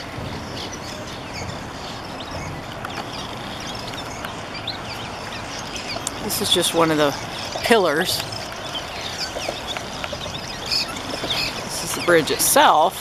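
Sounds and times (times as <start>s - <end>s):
swallows chirping: 0.0s - 12.9s
steady background rumble: 0.0s - 13.0s.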